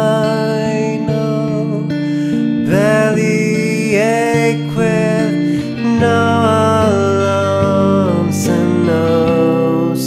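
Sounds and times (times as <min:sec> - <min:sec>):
clean electric guitar arpeggios: 0:00.0 - 0:10.0
wordless singing: 0:02.6 - 0:10.0.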